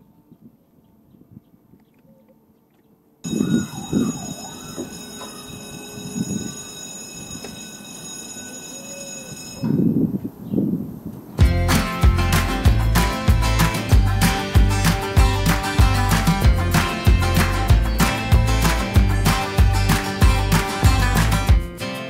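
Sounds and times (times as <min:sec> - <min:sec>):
warning signal ringing: 0:03.2 - 0:10.4
strummed acoustic guitar: 0:11.4 - 0:22.0.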